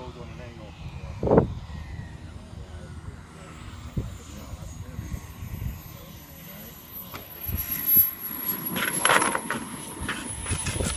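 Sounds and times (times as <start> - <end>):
model jet engine whine: 0.0 - 10.9.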